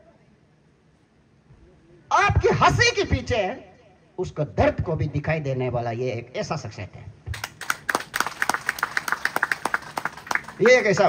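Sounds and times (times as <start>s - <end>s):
audience clapping: 7.3s - 11.0s.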